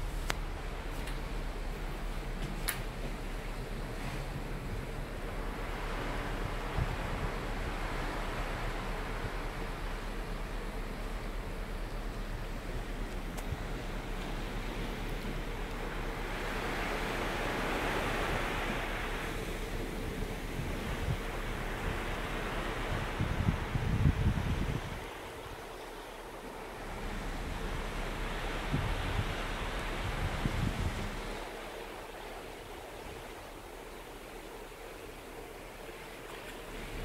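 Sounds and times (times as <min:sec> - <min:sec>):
wind buffeting microphone: 0:00.0 - 0:25.7, 0:26.8 - 0:33.8
sea water rushing along hull: 0:00.0 - 0:37.0.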